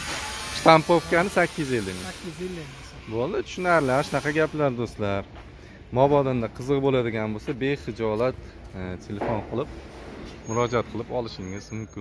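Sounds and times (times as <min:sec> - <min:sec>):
man talking: 0:00.6 - 0:09.7, 0:10.4 - 0:12.0.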